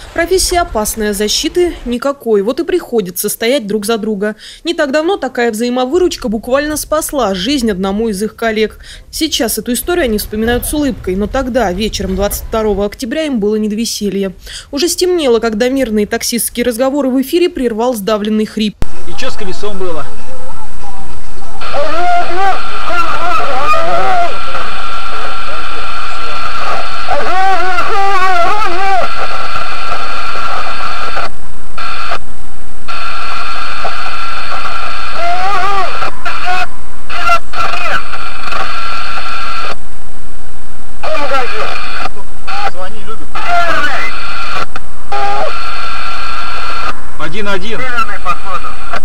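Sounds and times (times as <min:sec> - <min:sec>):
distorted radio transmission hiss: 0:00.0 - 0:02.9, 0:03.8 - 0:16.0, 0:18.8 - 0:49.0
garbled voice over radio: 0:21.6 - 0:31.3, 0:33.8 - 0:39.7, 0:41.0 - 0:45.7, 0:47.3 - 0:49.0.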